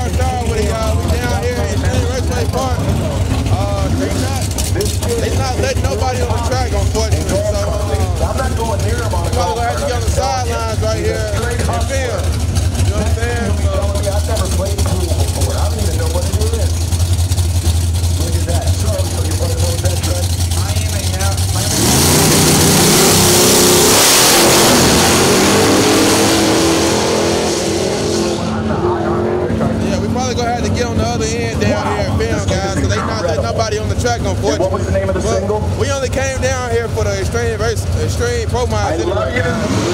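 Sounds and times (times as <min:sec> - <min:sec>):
drag cars idling: 0:00.0 - 0:39.9
drag cars launching and accelerating: 0:00.0 - 0:39.9.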